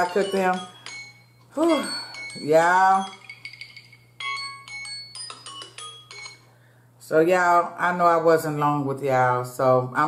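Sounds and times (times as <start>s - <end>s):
bright chiming notes: 0.0s - 6.5s.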